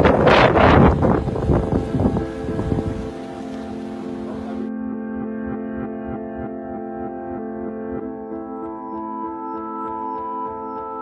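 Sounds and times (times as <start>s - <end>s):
storm wind gusting on microphone: 0.0s - 4.4s
rough sea: 0.0s - 4.7s
background music: 0.3s - 11.0s.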